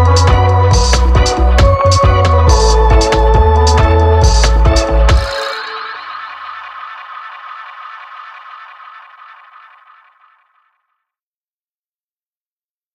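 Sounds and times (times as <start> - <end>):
reggae music echo tail: 0.0 - 6.4.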